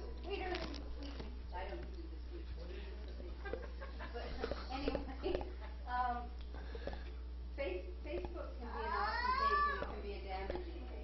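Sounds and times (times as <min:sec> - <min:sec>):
people talking: 0:00.0 - 0:06.3, 0:07.6 - 0:11.0.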